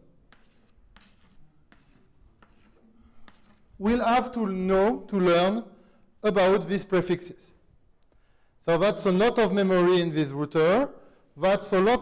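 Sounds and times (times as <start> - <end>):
pen scratching on surface: 0.3 - 3.7.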